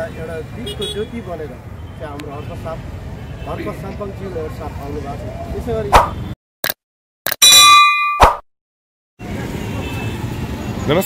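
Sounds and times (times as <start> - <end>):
bright bell ding: 7.4 - 8.4
sharp hit sound effect: 7.4 - 8.4.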